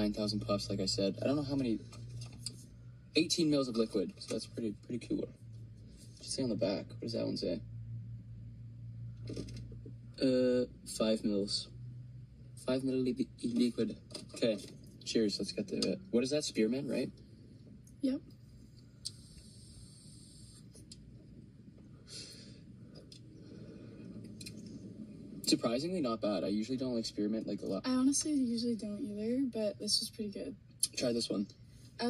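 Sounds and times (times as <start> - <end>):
steady low rumble: 0.0 - 32.0
soft airy breaths: 4.7 - 6.6, 17.1 - 27.0, 31.4 - 32.0
car cabin hum: 20.8 - 31.4.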